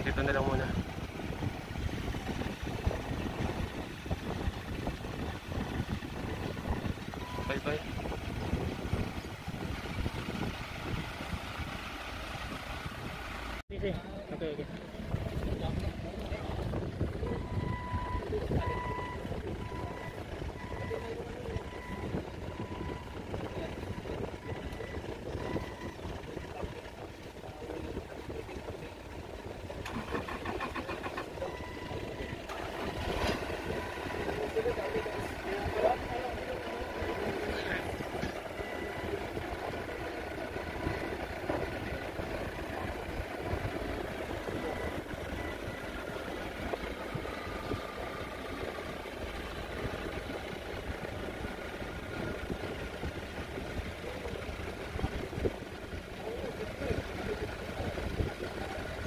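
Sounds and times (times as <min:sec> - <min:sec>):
forklift engine running: 0:00.0 - 0:13.6, 0:14.4 - 0:59.0.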